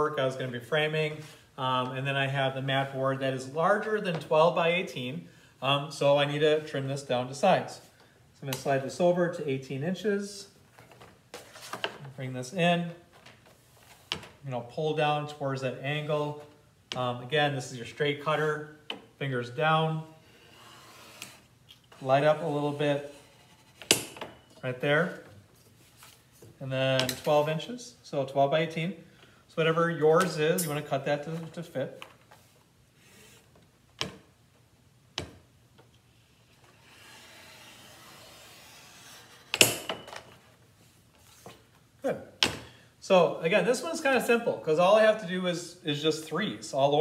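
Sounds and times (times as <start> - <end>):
blade scraping through board: 36.8 - 39.6.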